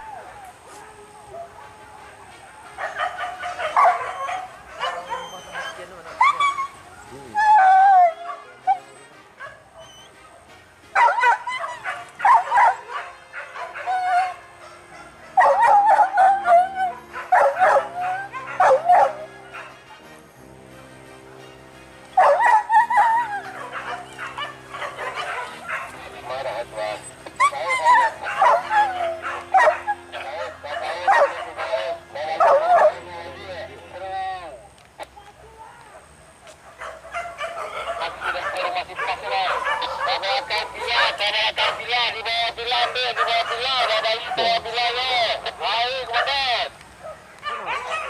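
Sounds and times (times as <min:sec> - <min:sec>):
dogs barking: 0:00.0 - 0:20.2, 0:22.1 - 0:48.0
music with held low chords: 0:01.1 - 0:35.0.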